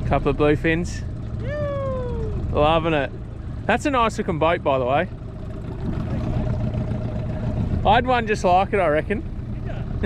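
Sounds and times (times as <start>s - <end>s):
outboard motor droning: 0.0s - 10.0s.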